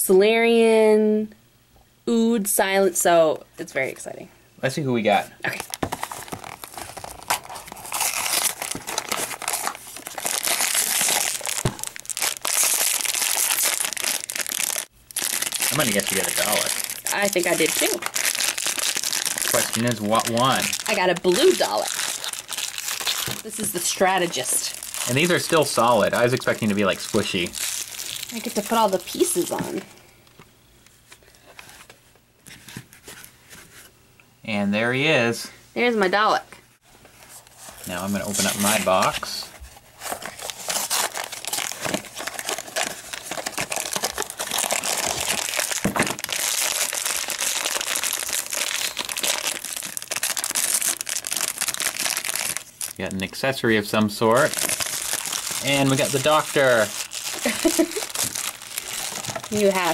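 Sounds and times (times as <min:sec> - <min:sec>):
foil bag crinkling: 0:05.5 - 0:29.9, 0:37.6 - 0:53.5, 0:54.2 - 0:59.9.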